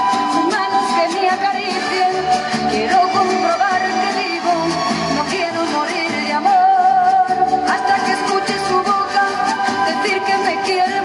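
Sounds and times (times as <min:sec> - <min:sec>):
guitar: 0:00.0 - 0:11.0
woman singing into a microphone: 0:00.0 - 0:11.0.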